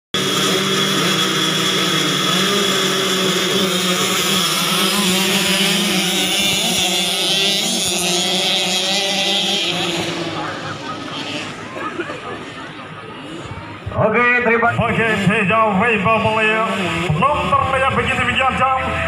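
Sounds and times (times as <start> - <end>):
small motorbike engines revving: 0.1 - 19.0.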